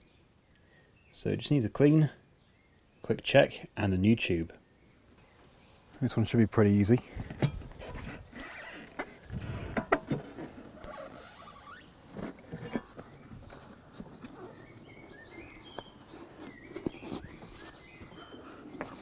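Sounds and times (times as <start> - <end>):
rubber tyre squeaks: 7.8 - 19.0.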